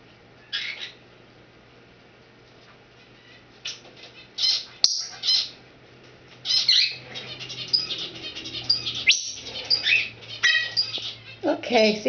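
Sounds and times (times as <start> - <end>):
parrot chirping and whistling: 6.4 - 11.3.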